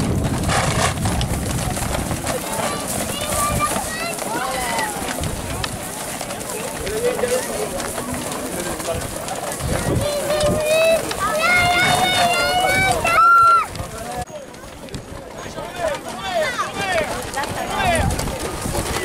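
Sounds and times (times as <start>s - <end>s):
horse hoofbeats on dry ground: 0.0s - 19.0s
people shouting and calling: 2.2s - 14.2s, 15.4s - 19.0s.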